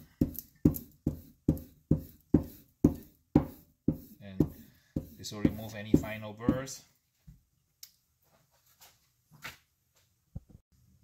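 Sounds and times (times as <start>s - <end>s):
buffing compound rubbing on strop: 0.2s - 6.6s.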